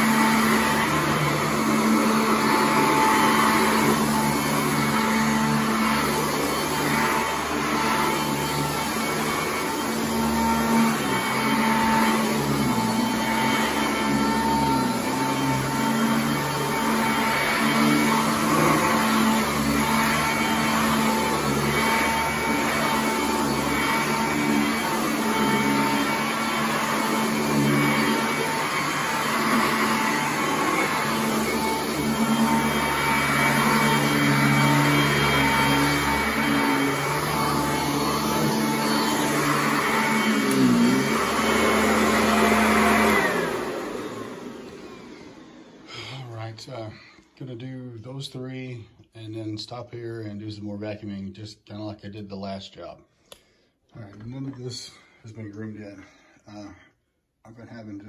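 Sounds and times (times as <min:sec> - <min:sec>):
vacuum cleaner running over carpet: 0:00.0 - 0:46.2
vacuum motor winding down: 0:00.0 - 0:46.2.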